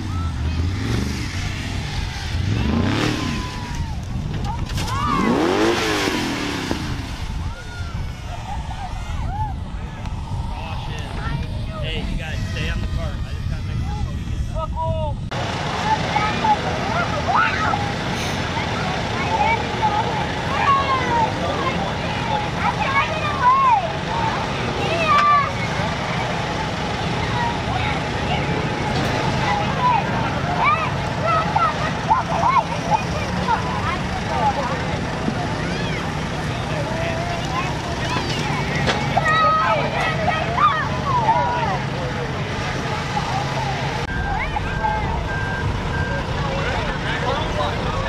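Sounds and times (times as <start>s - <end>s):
crowd chattering: 0.0s - 48.0s
low engine rumble: 0.0s - 48.0s.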